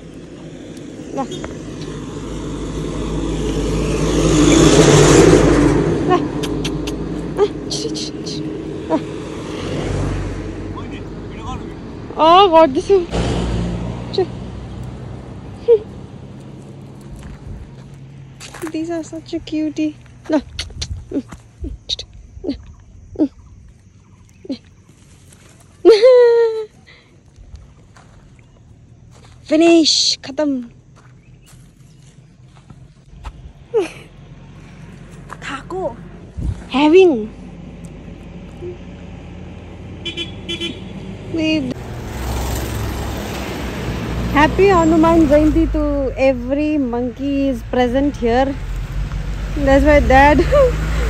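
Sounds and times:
passing road traffic rumble: 0.0s - 51.0s
monkeys squeaking: 6.1s - 9.1s
vehicle horn toots: 40.0s - 41.1s.

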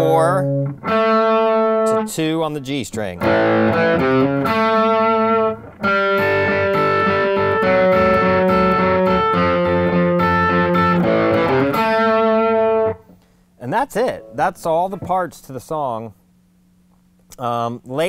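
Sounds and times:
electric guitar riff: 0.0s - 2.3s, 3.2s - 15.4s.

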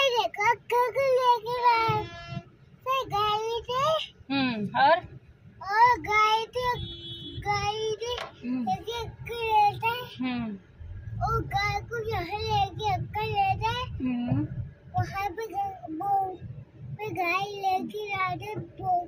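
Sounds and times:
car cabin road rumble: 0.0s - 19.0s
boy singing: 7.4s - 10.1s, 15.0s - 16.4s, 17.0s - 19.0s.

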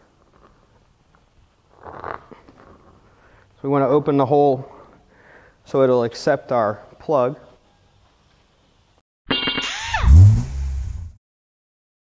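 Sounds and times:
low revving engine rumble: 9.9s - 11.2s.

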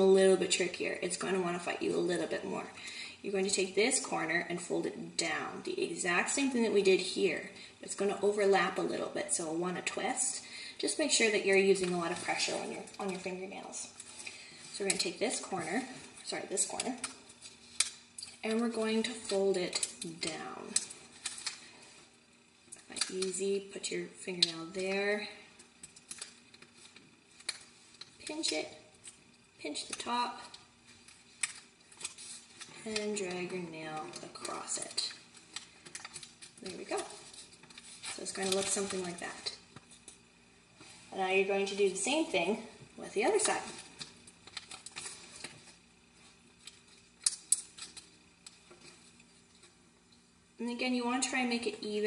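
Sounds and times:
paper being folded and creased: 25.8s - 28.5s, 29.7s - 40.1s, 43.3s - 49.8s.

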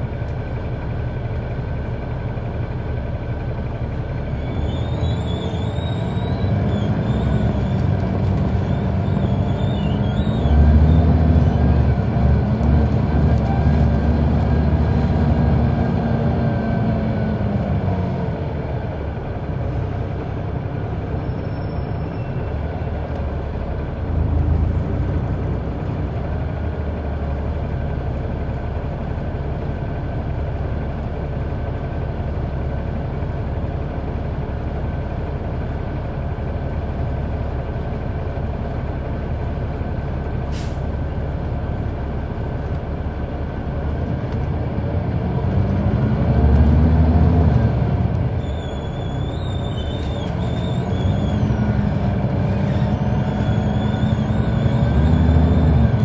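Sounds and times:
bus diesel engine running: 0.0s - 56.0s.

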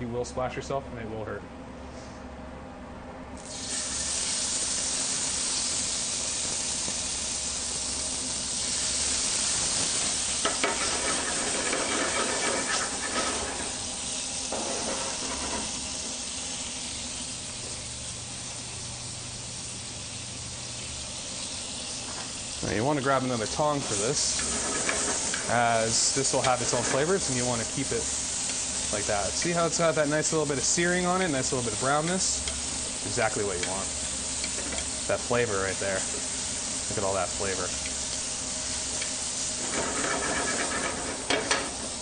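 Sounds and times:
meat sizzling in hot oil: 3.4s - 42.0s.

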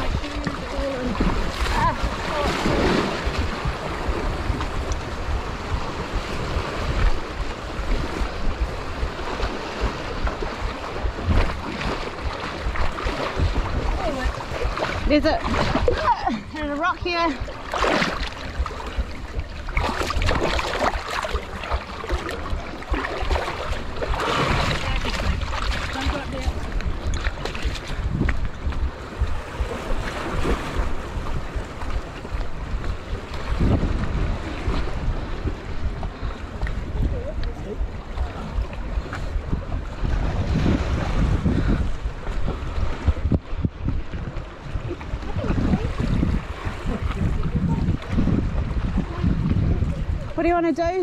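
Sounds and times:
seawater splashing and lapping: 0.0s - 51.0s
wind buffeting microphone: 0.0s - 51.0s
short splashes: 9.4s - 28.3s.

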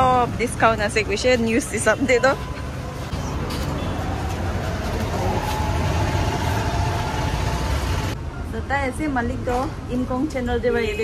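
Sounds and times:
vehicle engine rumble: 0.0s - 8.5s.

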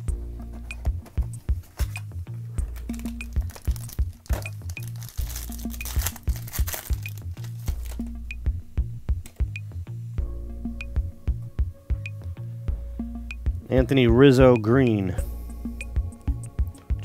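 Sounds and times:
electronic music with steady beat: 0.0s - 17.0s
foil wrapper crinkling and tearing: 2.7s - 8.0s.

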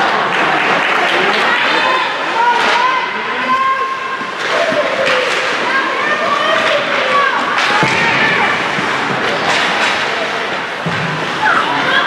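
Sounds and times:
crowd shouting and chatter: 0.0s - 12.0s
hockey sticks and puck clacking: 2.4s - 3.6s, 4.2s - 12.0s.

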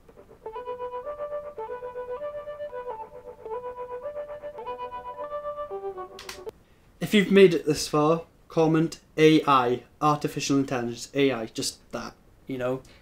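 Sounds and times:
synthesizer lead melody: 0.0s - 6.5s.

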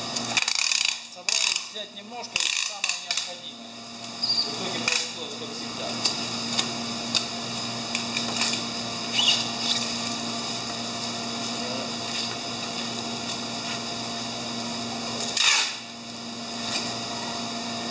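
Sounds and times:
steady mechanical hum: 0.0s - 17.9s.

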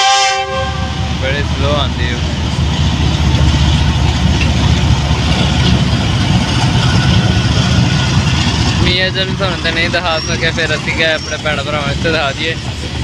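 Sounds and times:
diesel locomotive engine rumbling: 0.0s - 13.0s.

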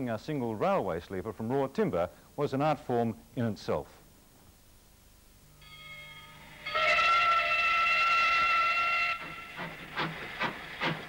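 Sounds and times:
steam locomotive whistle: 5.6s - 11.0s
locomotive exhaust chuffing: 7.6s - 11.0s.

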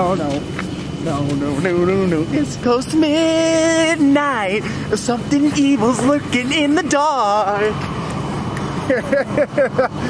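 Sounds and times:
steady low rumble: 0.0s - 10.0s
young man laughing: 8.7s - 10.0s.

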